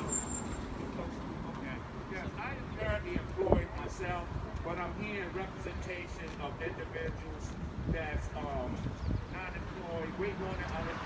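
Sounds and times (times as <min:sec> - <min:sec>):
low city rumble: 0:00.0 - 0:11.0.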